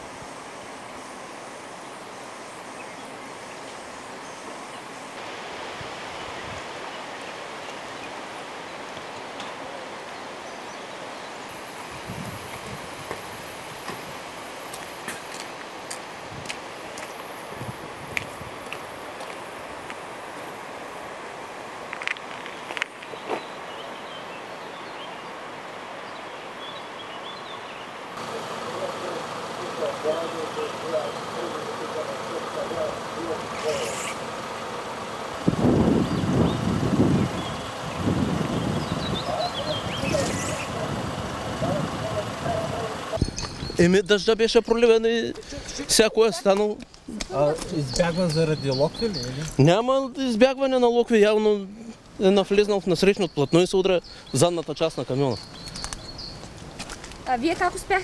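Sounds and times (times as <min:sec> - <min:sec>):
rain hiss: 0:00.0 - 0:58.0
distant people talking: 0:28.2 - 0:35.4, 0:38.9 - 0:43.2
louder voice: 0:39.2 - 0:43.2.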